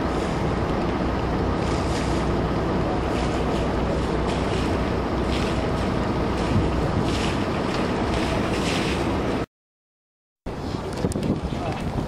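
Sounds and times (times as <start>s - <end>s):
wind buffeting microphone: 0.0s - 9.4s, 10.5s - 12.0s.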